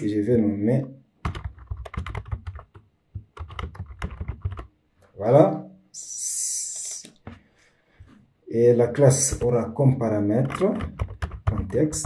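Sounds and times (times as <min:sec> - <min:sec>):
computer keyboard typing: 0:01.2 - 0:04.7, 0:09.3 - 0:09.6, 0:10.4 - 0:12.0.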